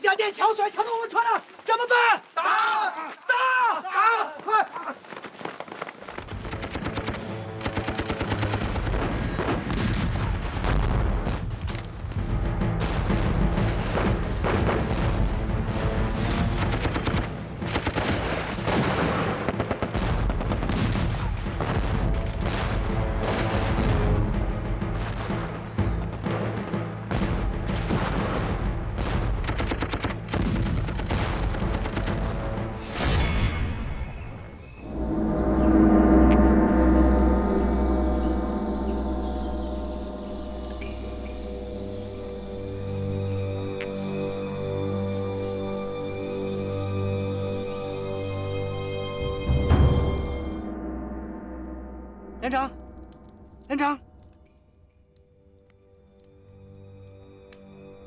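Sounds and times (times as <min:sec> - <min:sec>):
dramatic music score: 0:06.3 - 0:58.0
machine-gun fire: 0:06.4 - 0:11.1, 0:16.4 - 0:22.0, 0:27.8 - 0:32.4
explosions: 0:08.9 - 0:12.0, 0:12.8 - 0:16.5, 0:18.1 - 0:24.3, 0:27.1 - 0:29.4.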